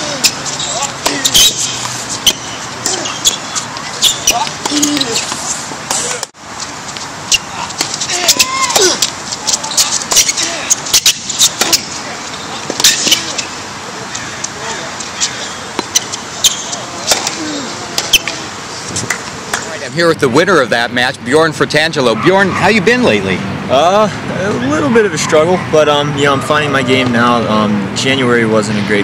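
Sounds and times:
tennis ball struck by racquets: 0.1 - 6.3, 7.3 - 12.0, 12.6 - 13.5, 15.7 - 19.7
people talking in background: 11.4 - 20.6
tennis ball bouncing on hard court: 15.7 - 17.4.

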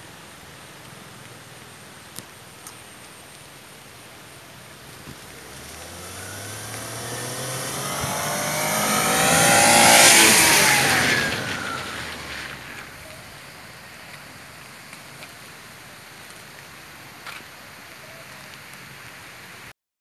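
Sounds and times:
tyres hissing through water: 0.0 - 19.7
car engine passing: 4.7 - 13.5.

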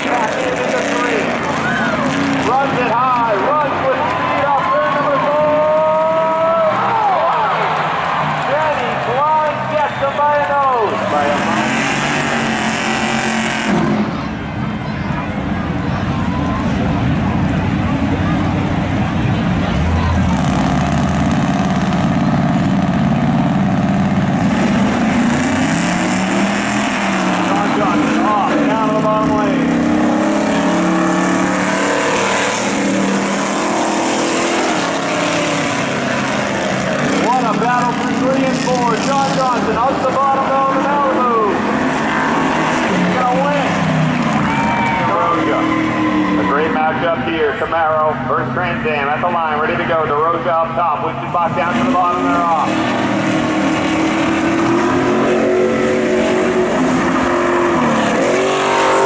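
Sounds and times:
car engines racing and revving: 0.0 - 59.0.

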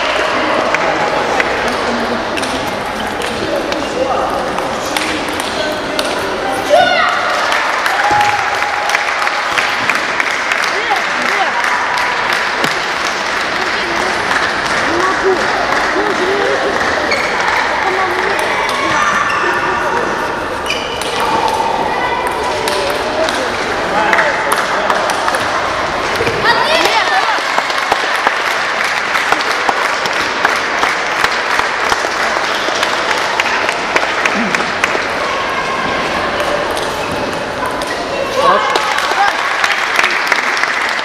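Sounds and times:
murmur of spectators talking: 0.0 - 41.0.

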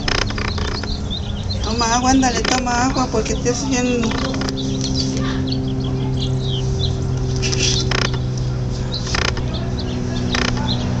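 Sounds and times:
rasping bursts: 0.0 - 11.0
small birds chirping: 0.0 - 11.0
steady low hum: 0.0 - 11.0.

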